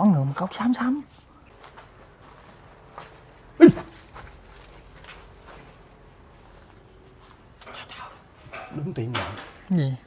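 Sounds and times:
faint footsteps: 0:01.1 - 0:08.5.

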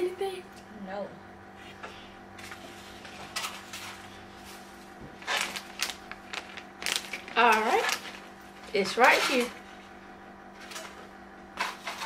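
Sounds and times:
low room hum: 0:00.0 - 0:12.0
hand rustling in popcorn bowl: 0:02.4 - 0:09.9.

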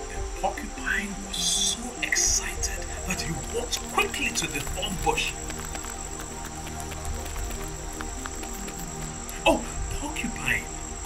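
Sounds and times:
person speaking: 0:00.0 - 0:06.3, 0:09.3 - 0:10.7
cricket-like chirring: 0:00.0 - 0:11.0
soft background music: 0:00.0 - 0:11.0.

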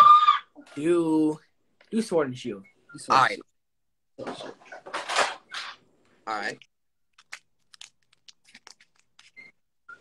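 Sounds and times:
foil wrapper crinkling and tearing: 0:07.1 - 0:09.4.

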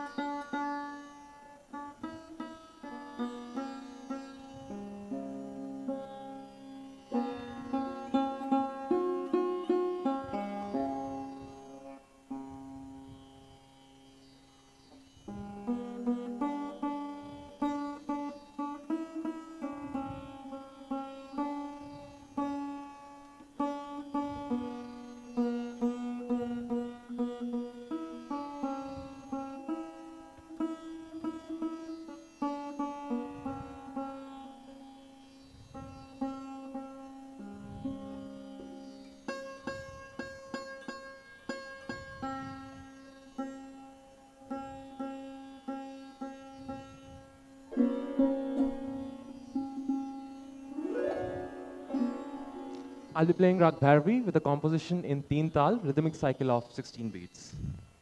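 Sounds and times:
plucked metal strings: 0:15.3 - 0:56.0.

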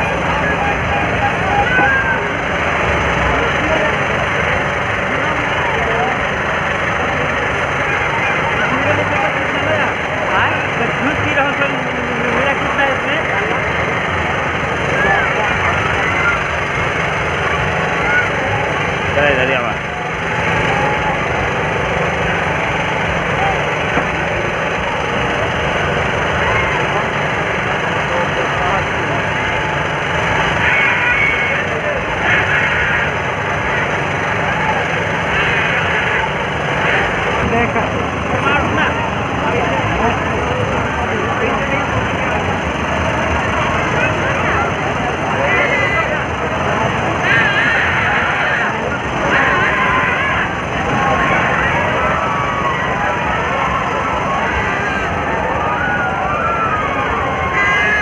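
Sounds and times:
crowd voices talking: 0:00.0 - 0:58.0
low engine-like hum: 0:00.0 - 0:58.0.

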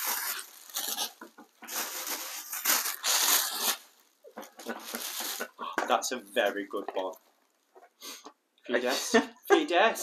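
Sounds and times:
paper packaging rustling: 0:00.0 - 0:05.6.

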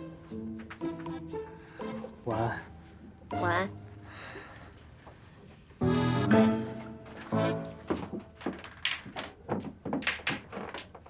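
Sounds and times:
footsteps on hard floor: 0:05.0 - 0:11.0.

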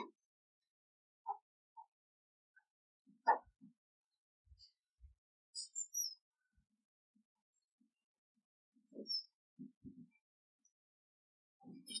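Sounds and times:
bird chirping: 0:05.5 - 0:06.6, 0:08.8 - 0:10.8, 0:11.6 - 0:12.0.

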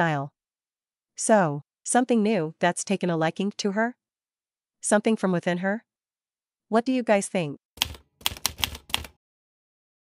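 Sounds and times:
typewriter keys clacking: 0:07.8 - 0:09.2.

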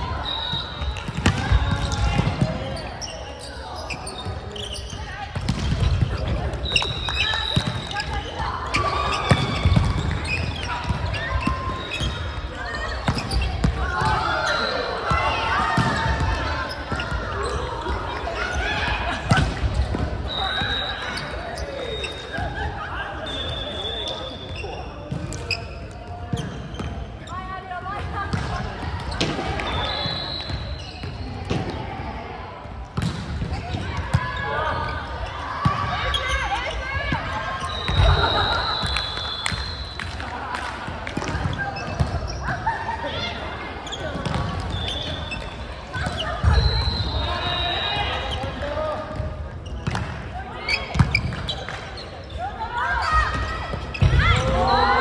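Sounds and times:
shoe squeaks: 0:02.7 - 0:13.7, 0:36.0 - 0:39.9, 0:43.8 - 0:48.9.

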